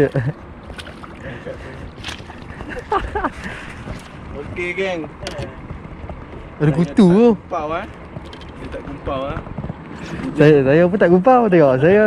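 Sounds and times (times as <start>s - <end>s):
water noise: 0.0s - 12.0s
wind: 0.0s - 12.0s
person laughing: 2.6s - 3.6s.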